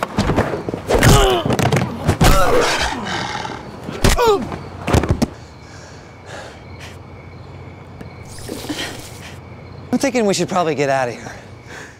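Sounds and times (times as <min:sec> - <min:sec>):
crickets chirring: 0:00.0 - 0:11.9.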